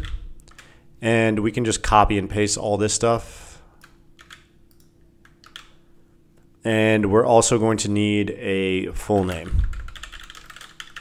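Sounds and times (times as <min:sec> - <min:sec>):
computer keyboard clicks: 0:00.0 - 0:00.7, 0:03.8 - 0:05.8, 0:09.2 - 0:11.0.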